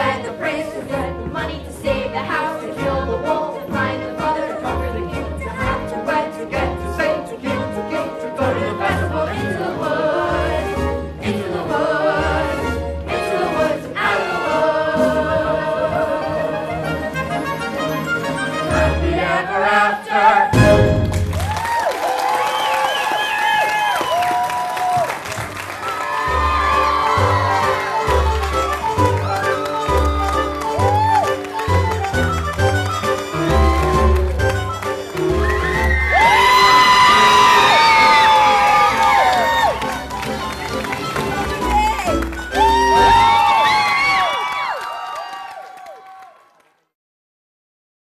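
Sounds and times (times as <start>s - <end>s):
choir singing with accompaniment: 0.0s - 21.0s
show music: 0.0s - 21.8s, 23.5s - 44.3s
audience cheering and whooping: 21.1s - 32.3s, 33.3s - 34.4s, 35.0s - 40.8s, 41.5s - 46.6s.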